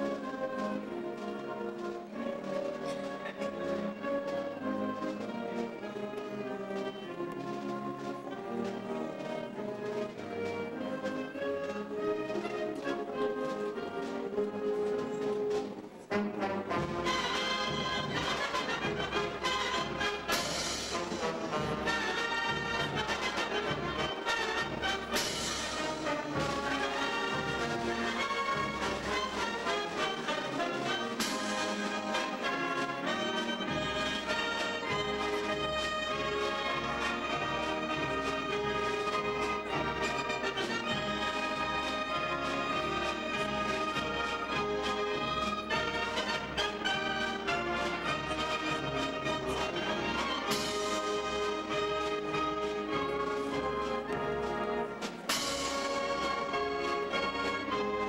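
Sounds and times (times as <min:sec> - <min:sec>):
wind band playing: 0:00.0 - 0:58.0.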